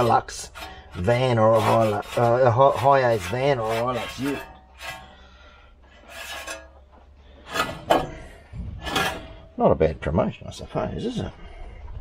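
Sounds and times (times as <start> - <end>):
rag scrubbing metal hub: 0.0 - 5.3, 5.9 - 6.8, 7.4 - 9.5.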